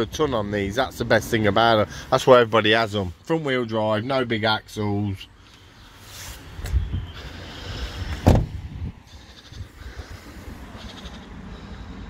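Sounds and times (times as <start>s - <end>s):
truck cab door shutting: 8.1s - 8.7s.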